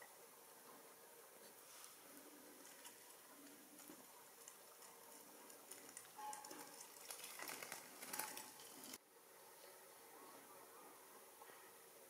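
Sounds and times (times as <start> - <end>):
moth clicking and rustling: 1.8 - 9.0.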